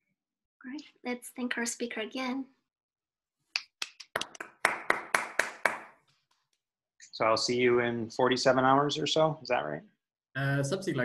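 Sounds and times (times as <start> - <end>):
hand clapping: 3.5 - 6.6.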